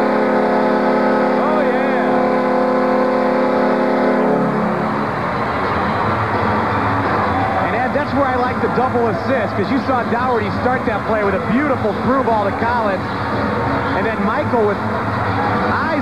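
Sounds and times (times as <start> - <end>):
arena goal horn blast: 0.0 - 5.1
crowd cheering: 0.0 - 16.0.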